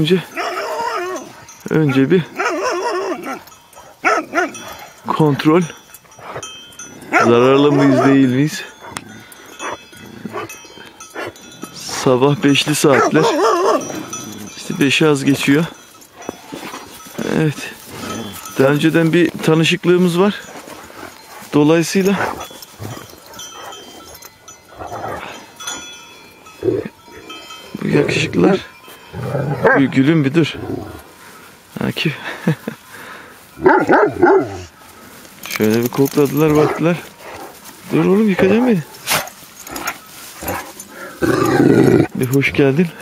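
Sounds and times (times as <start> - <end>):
sheep bells ringing: 0.0 - 43.0
dog growling: 12.9 - 14.6, 17.9 - 18.6, 22.2 - 24.0, 30.5 - 31.0, 39.7 - 42.2.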